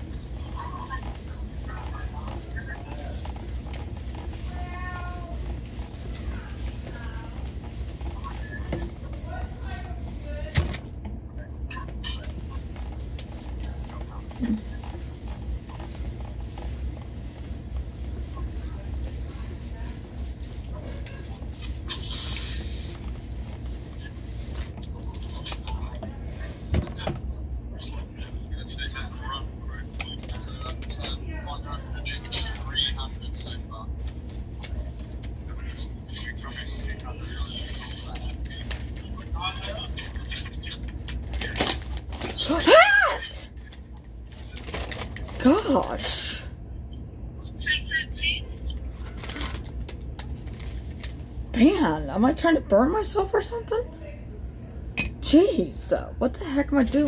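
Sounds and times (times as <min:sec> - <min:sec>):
steady low hum: 0:00.0 - 0:57.0
paper scrapes clicks and rustles: 0:49.0 - 0:51.2.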